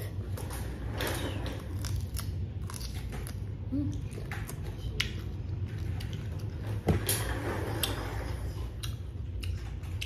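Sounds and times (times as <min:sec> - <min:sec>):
chewing crisp fruit: 0:01.2 - 0:06.8, 0:08.6 - 0:10.0.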